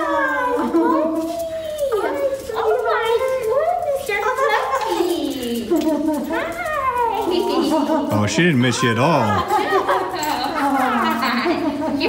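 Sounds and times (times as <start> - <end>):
dog whining and howling: 0.0 - 4.3, 6.0 - 8.1.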